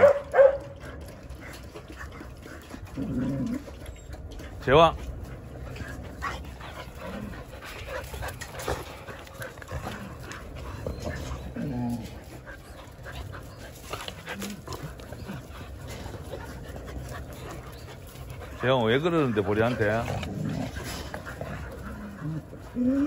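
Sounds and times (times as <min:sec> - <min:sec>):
dogs scuffling on dirt: 0:00.0 - 0:23.0
dogs whining: 0:00.0 - 0:23.0.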